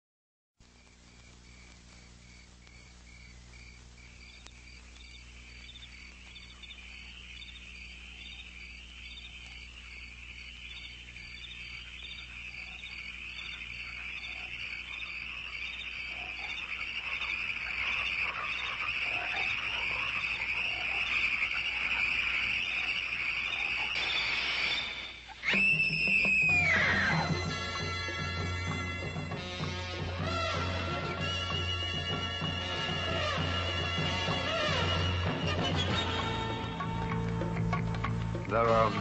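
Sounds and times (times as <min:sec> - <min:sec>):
crickets chirping: 0:00.7 - 0:29.4.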